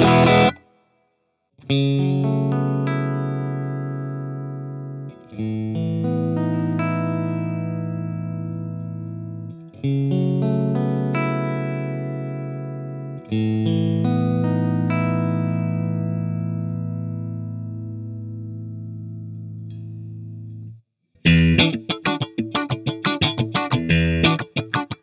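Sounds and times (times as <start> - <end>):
electric guitar chord ringing: 0.0 - 0.6, 21.3 - 25.0
muted distorted guitar riff: 0.0 - 0.7, 21.2 - 25.0.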